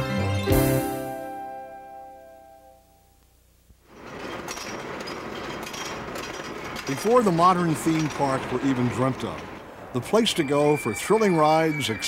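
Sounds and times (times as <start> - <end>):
ride cars rattling on track: 3.9 - 12.0.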